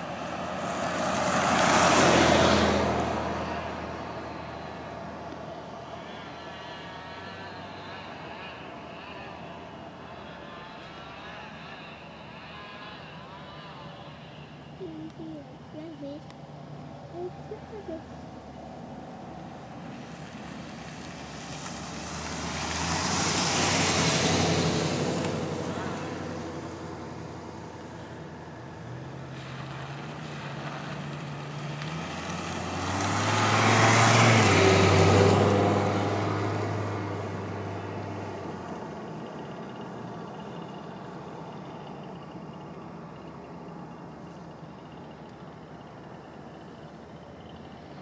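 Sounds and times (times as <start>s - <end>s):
vehicles passing: 0.0s - 48.0s.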